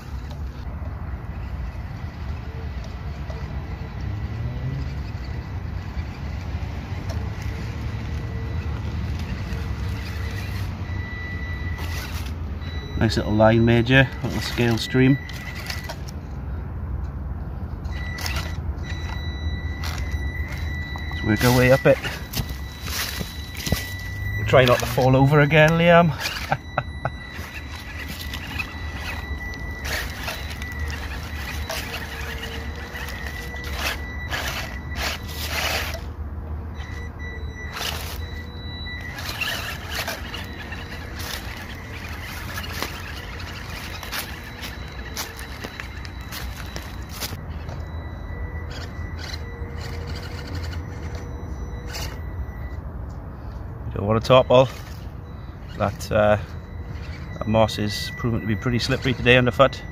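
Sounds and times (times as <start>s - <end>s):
toy truck electric motor whining: 0.0s - 16.4s, 17.8s - 52.8s, 54.2s - 59.9s
crunches and clicks: 17.8s - 36.1s, 36.8s - 53.2s.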